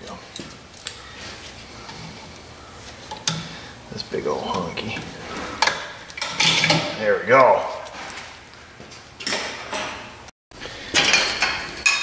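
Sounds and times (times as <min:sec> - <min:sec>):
steel tools clinking and clattering: 0:05.6 - 0:06.9, 0:10.9 - 0:12.0.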